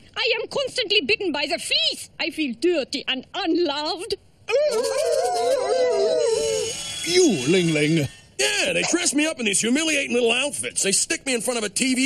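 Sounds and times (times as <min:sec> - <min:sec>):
cartoon dog sobbing howl: 0:04.5 - 0:06.7.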